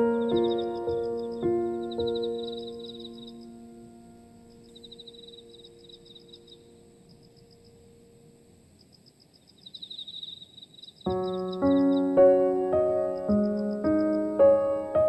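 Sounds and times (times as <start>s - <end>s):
piano chord: 0.0s - 8.3s, 11.1s - 15.0s
crickets chirping: 0.0s - 15.0s.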